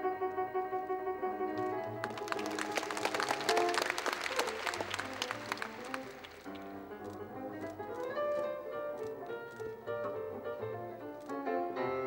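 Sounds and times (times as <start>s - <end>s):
ballet music: 0.0s - 12.0s
audience applause: 1.6s - 6.8s.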